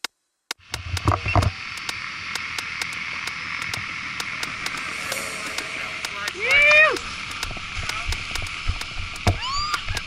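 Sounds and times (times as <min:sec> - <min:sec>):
faint regular ticking: 0:01.7 - 0:06.4
low rumble: 0:03.5 - 0:08.2
wind hissing on microphone: 0:03.6 - 0:09.2.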